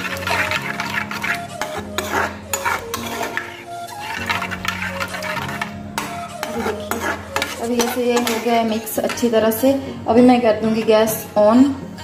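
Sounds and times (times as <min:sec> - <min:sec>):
spoon scraping and stirring in a pan: 0:00.0 - 0:11.4
background music with sustained notes: 0:00.0 - 0:12.0.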